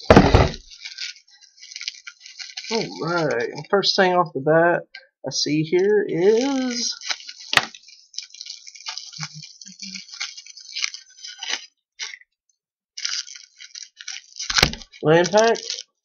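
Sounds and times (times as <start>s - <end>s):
cellophane crinkling: 0.0s - 4.2s, 5.5s - 12.2s, 13.0s - 16.0s.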